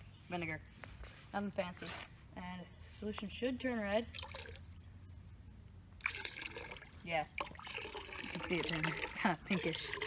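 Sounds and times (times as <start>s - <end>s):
liquid trickling into bucket: 4.1s - 5.0s, 6.0s - 10.0s.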